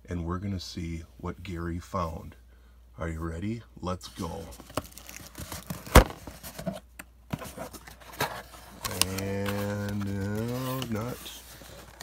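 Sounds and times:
cardboard rustling and clicking: 4.6 - 12.0
cardboard flap snapping: 4.8 - 6.3.

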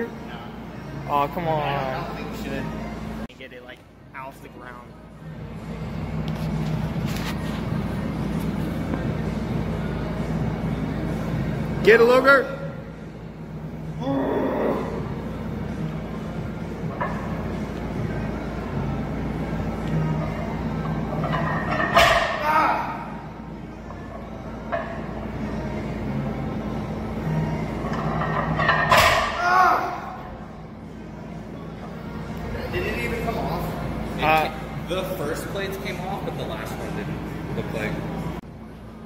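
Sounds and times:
faint background music: 0.0 - 39.0.

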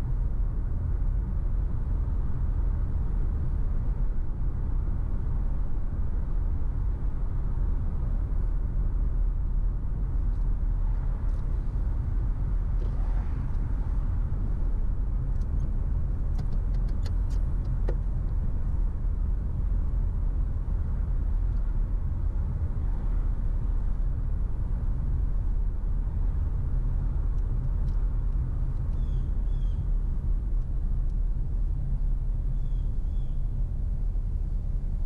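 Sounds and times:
car engine and road rumble: 0.0 - 35.0.

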